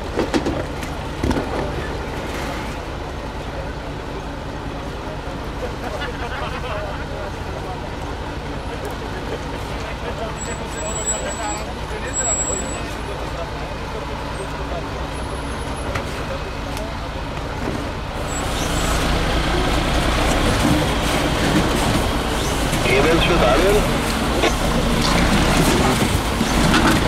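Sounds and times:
diesel truck engine at low revs: 0.0s - 27.0s.

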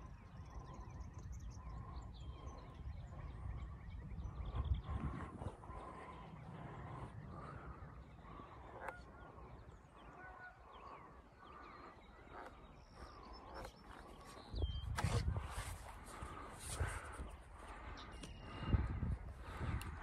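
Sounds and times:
distant birds calling: 0.0s - 20.0s
low rumble on microphone: 0.0s - 20.0s.

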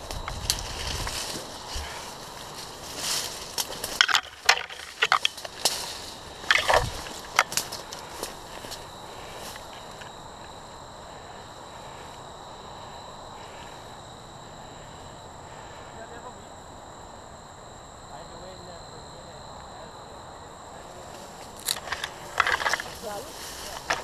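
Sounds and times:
sticks snapping underfoot: 0.0s - 8.9s, 21.4s - 24.0s.

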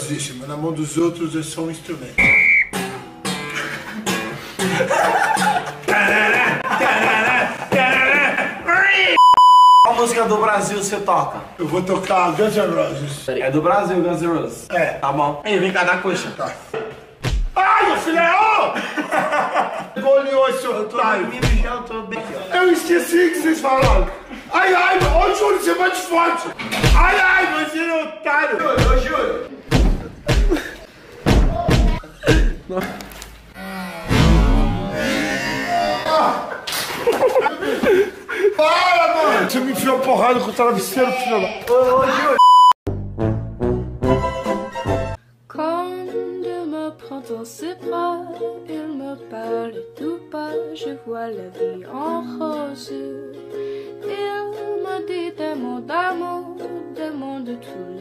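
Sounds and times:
high censor bleep: 2.2s - 2.7s, 9.2s - 9.9s, 42.4s - 42.8s
people shouting: 17.6s - 18.8s, 26.8s - 27.8s
man's voice: 20.0s - 29.5s.

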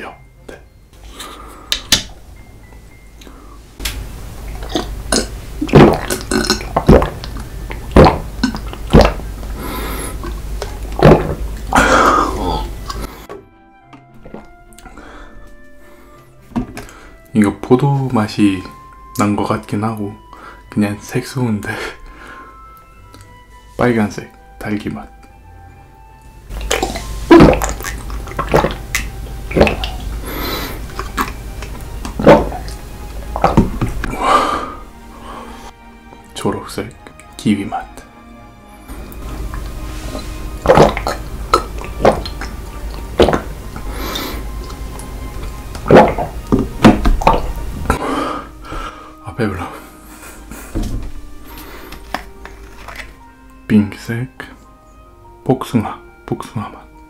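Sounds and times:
soft background music: 0.0s - 57.0s
gulping and swallowing water: 4.5s - 9.6s, 26.5s - 30.2s, 30.8s - 34.1s, 40.6s - 43.6s, 44.5s - 47.6s
liquid sloshing in bottle: 5.6s - 9.6s, 10.2s - 11.6s, 26.5s - 30.2s, 30.8s - 34.1s, 39.0s - 43.9s, 44.6s - 48.0s, 51.6s - 53.2s.

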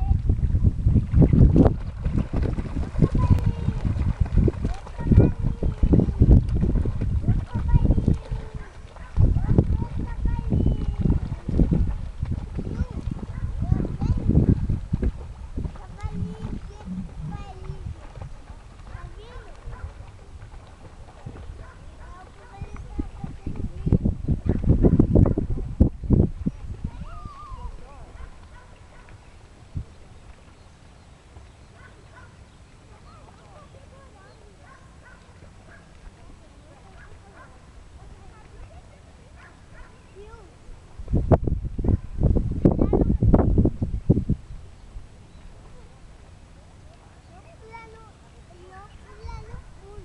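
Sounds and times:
swimmer splashing: 0.0s - 24.0s, 26.4s - 41.1s
wind buffeting microphone: 0.0s - 50.0s
faint indistinct voices: 1.7s - 41.2s, 45.2s - 50.0s.

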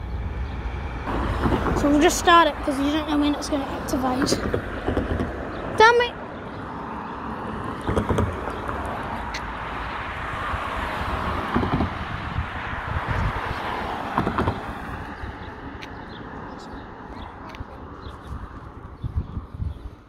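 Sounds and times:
car passing: 0.0s - 20.0s
wind rumbling on microphone: 6.4s - 20.0s.

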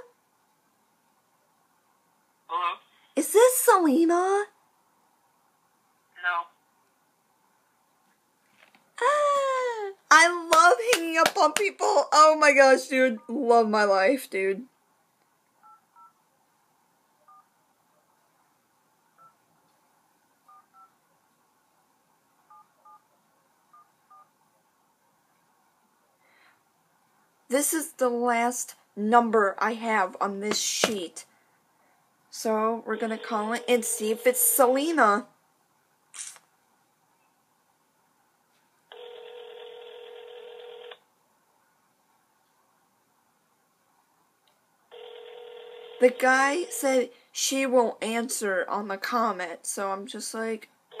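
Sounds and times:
telephone ringback tone: 38.9s - 41.0s, 44.9s - 46.8s.

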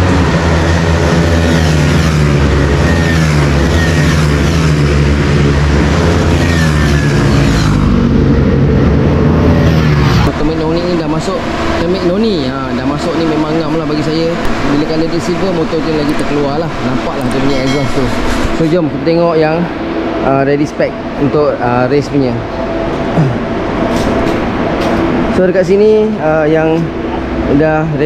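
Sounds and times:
motorcycle engines revving high: 0.0s - 28.0s
man talking: 10.3s - 22.4s.

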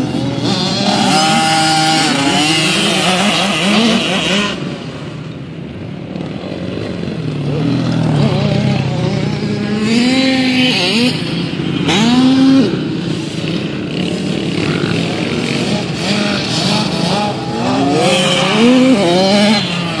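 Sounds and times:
motocross bikes revving: 0.0s - 20.0s.

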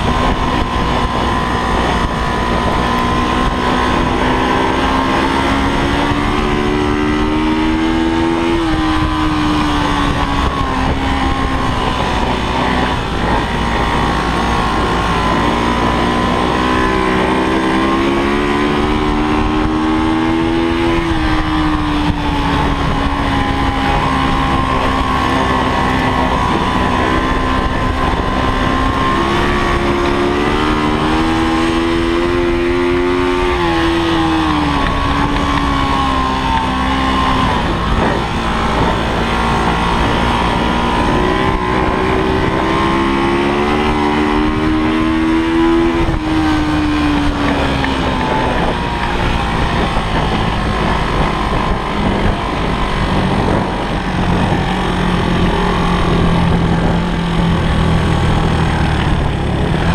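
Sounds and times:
motorcycle engine accelerating: 0.0s - 59.9s.

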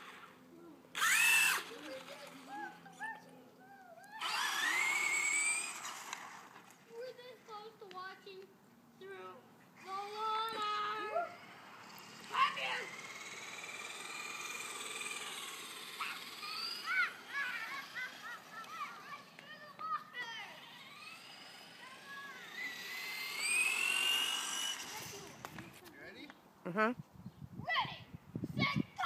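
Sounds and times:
children shrieking excitedly: 0.9s - 1.7s, 2.4s - 5.9s, 15.1s - 25.1s.

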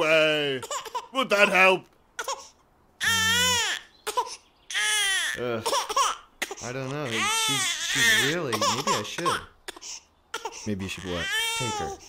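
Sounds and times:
baby crying: 0.5s - 1.6s, 2.2s - 12.0s.

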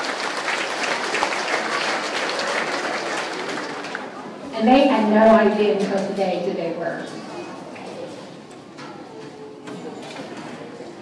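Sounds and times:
audience applauding: 0.0s - 4.4s.

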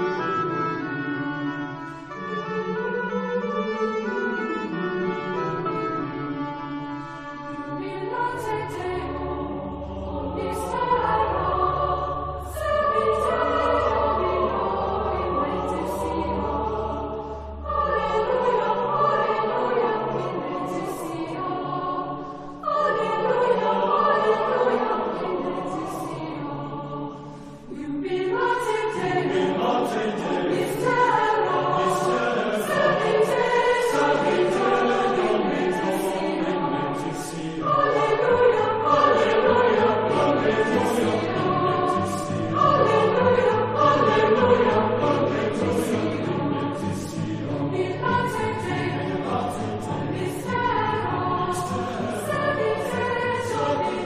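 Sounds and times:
choir singing sacred music: 0.0s - 54.0s.

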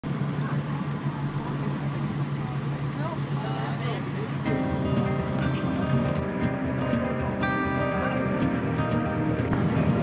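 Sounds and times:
vehicle road noise drone: 0.0s - 10.0s.

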